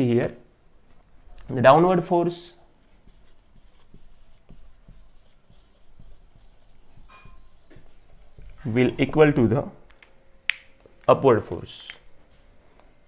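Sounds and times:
marker pen writing on whiteboard: 2.8 - 9.5
thin high marker squeak: 3.7 - 8.8.

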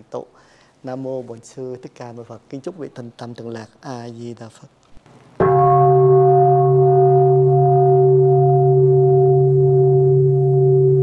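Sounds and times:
deep gong-like tone: 5.4 - 11.0.

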